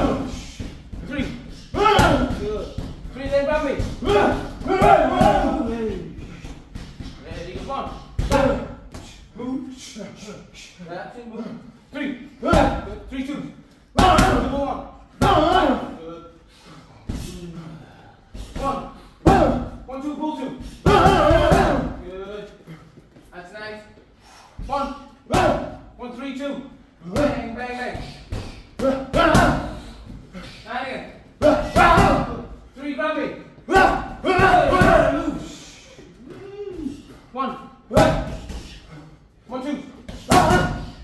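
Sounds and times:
boxing gloves striking mitts: 0.0 - 8.7, 20.7 - 22.0, 38.0 - 38.8, 40.1 - 41.0
men's wordless voices: 0.0 - 41.0.

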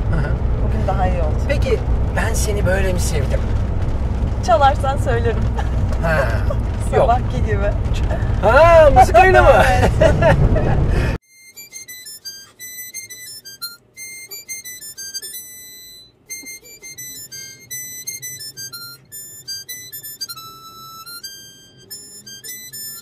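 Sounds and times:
harmonica melody: 11.2 - 23.0.

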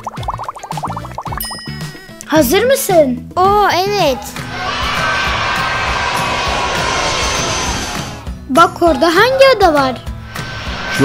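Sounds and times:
music: 0.0 - 11.0
seaplane engines rushing: 4.3 - 8.4.

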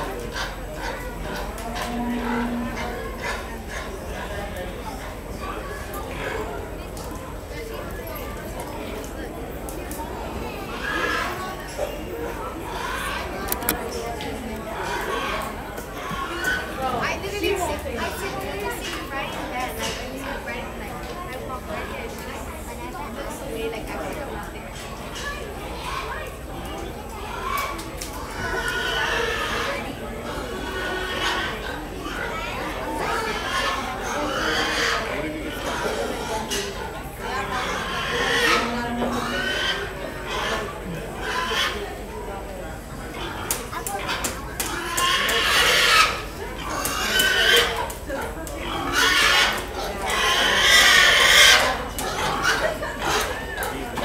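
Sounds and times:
pigs squealing: 0.0 - 4.3, 10.5 - 13.9, 14.7 - 17.0, 27.3 - 42.0, 43.1 - 48.0, 48.6 - 53.7
crowd chatter: 0.0 - 54.0.

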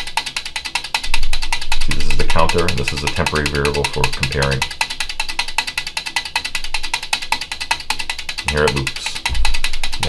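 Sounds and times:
relays clicking: 0.0 - 10.0.

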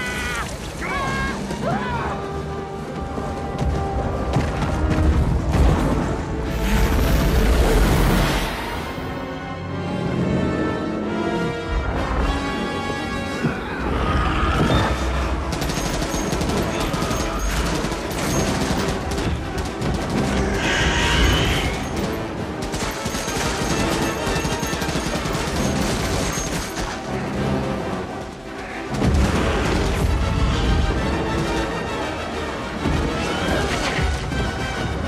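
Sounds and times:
orchestral film score: 0.0 - 35.0.

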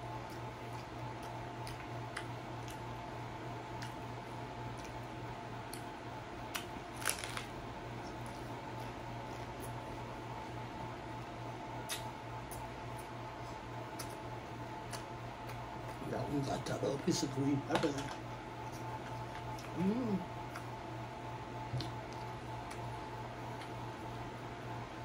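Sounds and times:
steady low hum: 0.0 - 25.0
taco shell crunching: 6.5 - 9.8.

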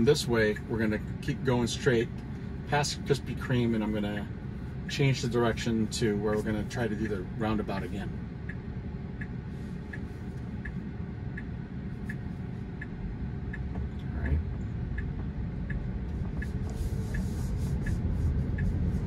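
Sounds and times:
car cabin and road hum: 0.0 - 19.0
turn signal ticking: 0.0 - 19.0.

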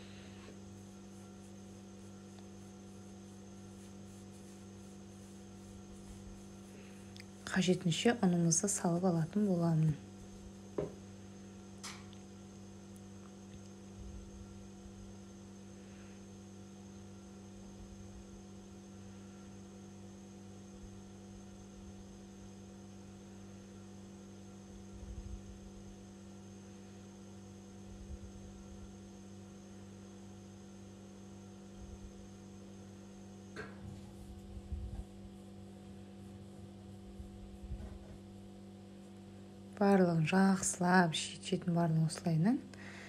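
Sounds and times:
electrical mains hum: 0.0 - 43.0.

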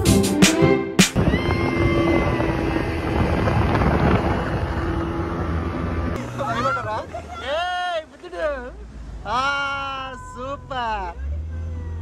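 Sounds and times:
wind noise on microphone: 1.2 - 6.2
speedboat engine hum: 1.2 - 12.0.

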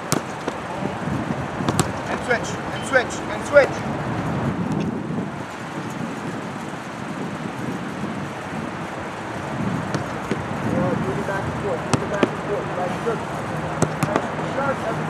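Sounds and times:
soccer balls being kicked: 0.0 - 15.0
steady outdoor rumble: 0.0 - 15.0
faint distant voices: 10.0 - 15.0.

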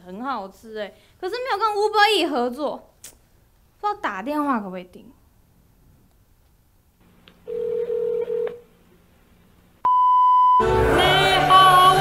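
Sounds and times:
telephone ringing tone: 7.5 - 8.6
high-pitched beep: 9.9 - 10.7.

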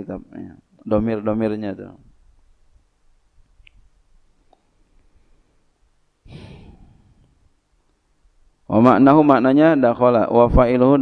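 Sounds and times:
man breathing into microphone: 6.2 - 7.5.

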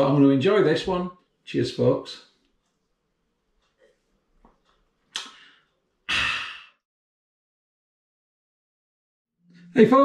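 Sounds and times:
man breathing out: 5.2 - 6.8
man sighing: 6.1 - 6.8.

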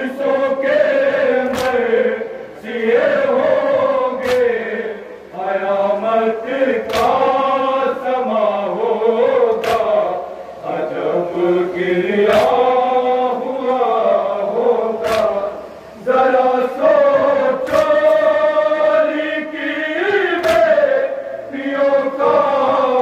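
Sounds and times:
men chanting a lament: 0.0 - 23.0.

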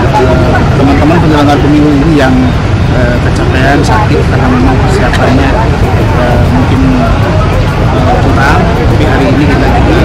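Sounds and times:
loud steady low rumble: 0.0 - 10.0
man speaking: 0.0 - 10.0.

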